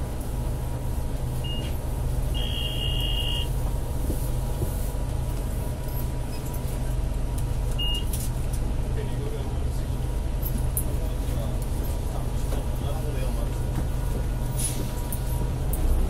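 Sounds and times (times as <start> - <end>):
bus engine rumble: 0.0 - 16.0
road noise: 0.0 - 16.0.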